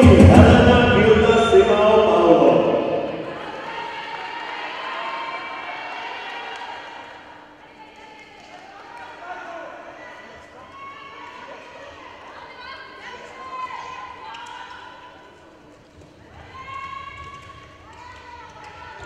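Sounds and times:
voices in a sports hall: 0.0s - 19.0s.

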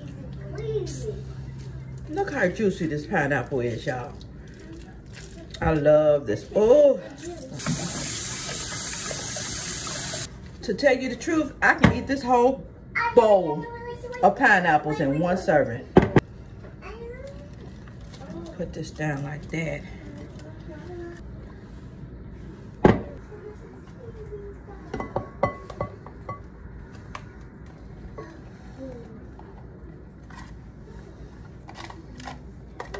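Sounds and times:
kitchen faucet running: 7.4s - 10.3s.

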